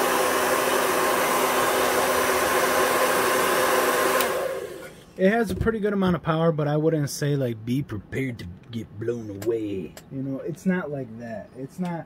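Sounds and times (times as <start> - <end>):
hair dryer running: 0.0 - 5.1.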